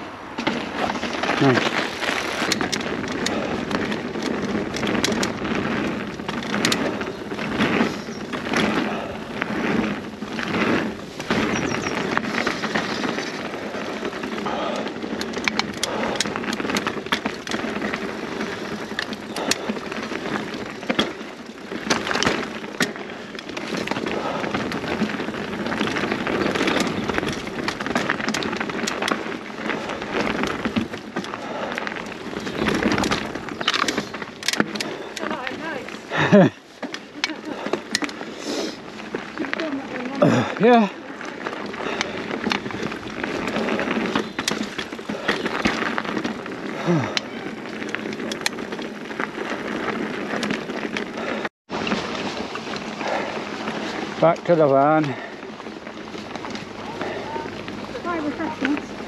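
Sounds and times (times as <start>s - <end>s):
bike parts clattering: 0.0s - 59.0s
bike tyres rushing on dirt: 0.0s - 59.0s.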